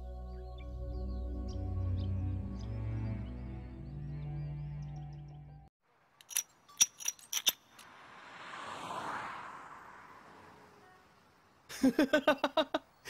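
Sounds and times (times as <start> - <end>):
film music: 0.0 - 5.7
sharp metallic clinks: 6.2 - 7.9.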